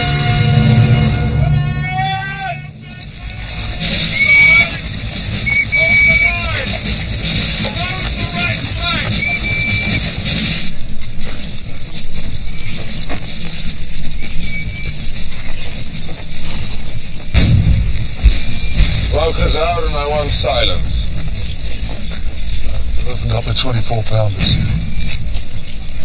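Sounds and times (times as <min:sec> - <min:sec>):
deep rumble: 0:00.0 - 0:26.0
steady rushing noise: 0:00.0 - 0:26.0
man calling out: 0:01.4 - 0:03.7
scattered clicks and rattles: 0:02.6 - 0:26.0.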